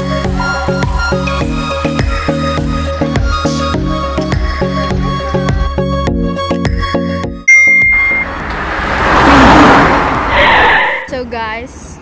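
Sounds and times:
background music: 0.0s - 8.5s
passing traffic: 0.0s - 12.0s
loud high beep: 7.5s - 8.3s.

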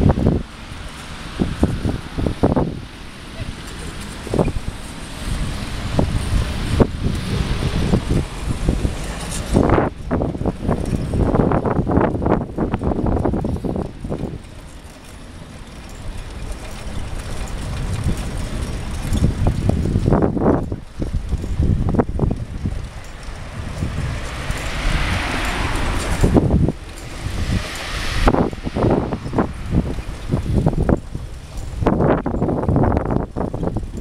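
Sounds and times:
road traffic: 0.0s - 34.0s
wind buffeting microphone: 0.0s - 34.0s.

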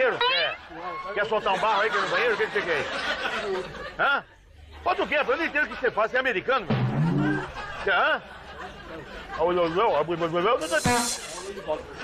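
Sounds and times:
short sharp hiss: 10.6s - 11.6s.

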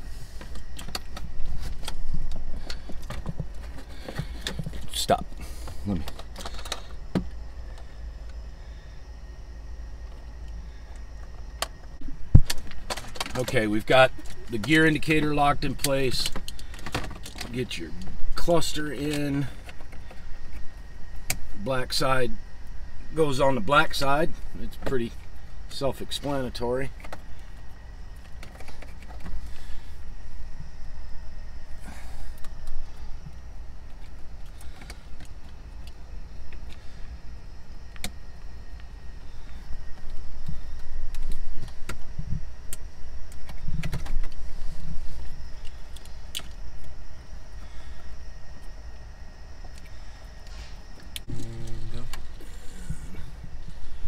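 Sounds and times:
steady low rumble: 0.0s - 54.0s.

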